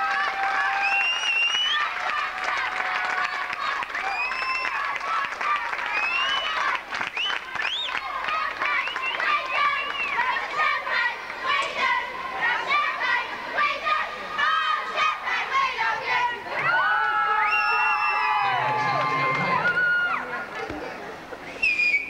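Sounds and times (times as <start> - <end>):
audience cheering and shouting: 9.2 - 20.5
high-pitched whoops: 16.7 - 20.2.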